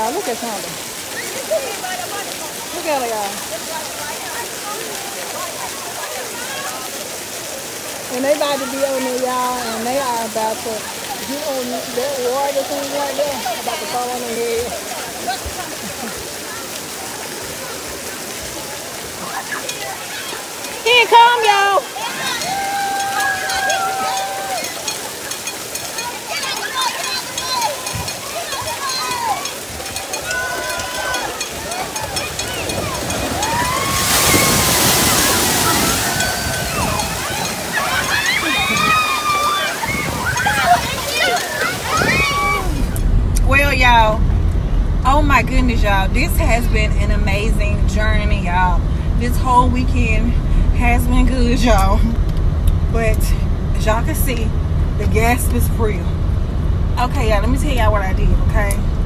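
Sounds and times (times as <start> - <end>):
voices chattering and calling: 0.0 - 43.2
running and splashing water: 0.0 - 56.3.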